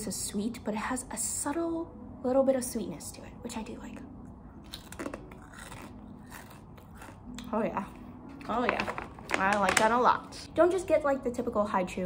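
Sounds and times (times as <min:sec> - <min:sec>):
cracker crunching: 0:04.6 - 0:10.1.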